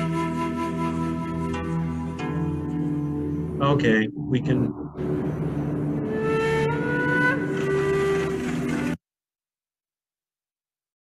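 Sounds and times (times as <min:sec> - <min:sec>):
dense rushing noise: 0:04.2 - 0:09.0.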